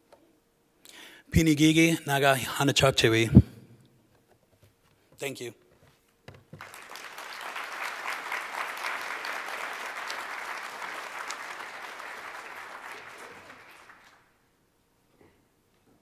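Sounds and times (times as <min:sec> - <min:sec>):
audience applauding: 0:06.6 - 0:14.4.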